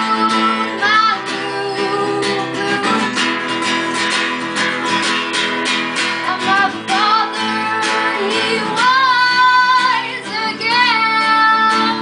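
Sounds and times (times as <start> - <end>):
woman singing: 0.0 - 4.0, 6.2 - 12.0
strummed acoustic guitar: 0.0 - 12.0.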